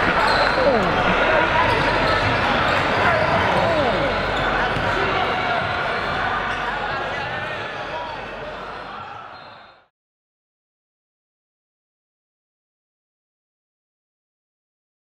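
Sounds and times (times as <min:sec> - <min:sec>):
gymnasium crowd voices echoing: 0:00.0 - 0:09.9.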